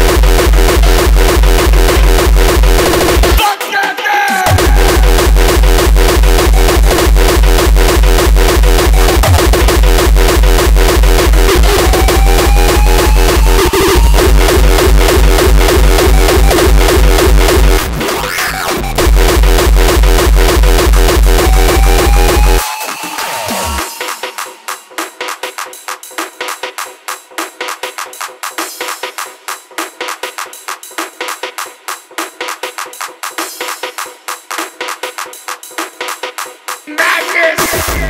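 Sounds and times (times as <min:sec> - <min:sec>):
fast heavy kick drum: 0:00.0 - 0:03.5, 0:04.4 - 0:22.6, 0:37.6 - 0:38.0
hardcore electronic dance music: 0:00.0 - 0:38.0
rising synth line: 0:08.8 - 0:22.6.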